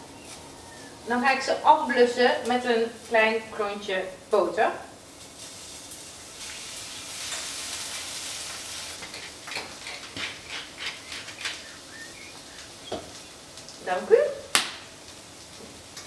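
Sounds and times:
mushrooms sizzling in pan: 0:00.0 - 0:16.0.

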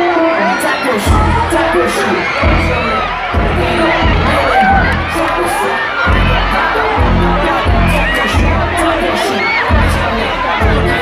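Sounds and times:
crowd screaming and cheering: 0:00.0 - 0:11.0
loud live music with bass: 0:00.0 - 0:11.0.

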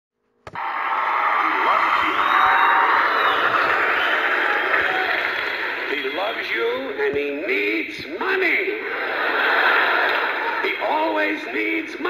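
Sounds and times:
faint whoops: 0:00.6 - 0:05.7
audience laughing and applauding: 0:00.6 - 0:12.0.

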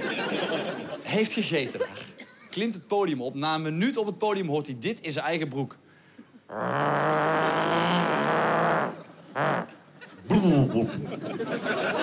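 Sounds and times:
man imitating fart into microphone: 0:06.5 - 0:09.7.

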